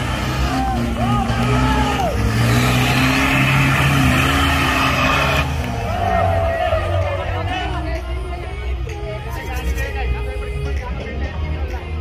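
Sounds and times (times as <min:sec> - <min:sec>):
diesel engine at high revs: 0:00.0 - 0:08.1.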